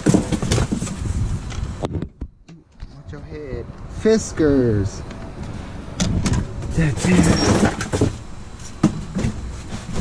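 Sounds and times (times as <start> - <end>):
objects knocking: 0.0 - 1.1, 6.0 - 8.2
cardboard and plastic rustling: 0.0 - 1.9, 6.6 - 10.0.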